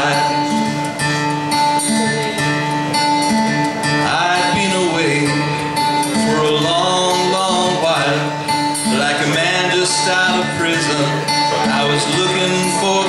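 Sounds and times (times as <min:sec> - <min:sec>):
man singing: 0:00.0 - 0:00.9, 0:04.0 - 0:13.0
acoustic guitar strumming: 0:00.0 - 0:13.0
held bending melody notes: 0:00.0 - 0:13.0.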